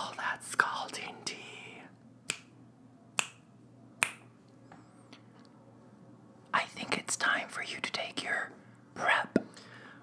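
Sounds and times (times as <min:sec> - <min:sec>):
finger snaps: 0:02.2 - 0:02.6, 0:03.2 - 0:03.4, 0:04.0 - 0:04.3.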